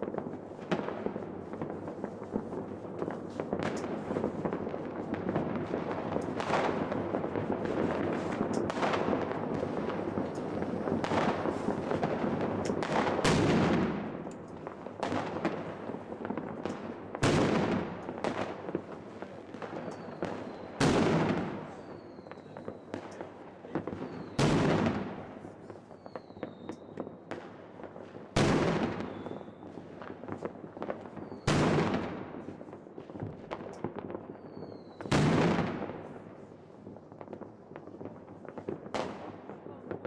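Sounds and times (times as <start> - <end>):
loud firework bangs: 0.0 - 23.1, 23.7 - 27.6, 28.3 - 36.3
fireworks crackling: 0.0 - 40.0
firework whistles: 19.7 - 23.2, 24.0 - 24.7, 25.8 - 27.0, 28.9 - 29.9, 31.0 - 32.0, 34.3 - 35.6.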